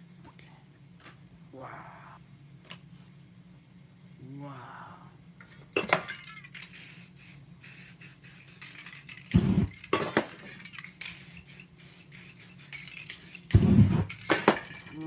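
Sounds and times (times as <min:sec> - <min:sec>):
spray paint can hissing: 0:06.5 - 0:14.8.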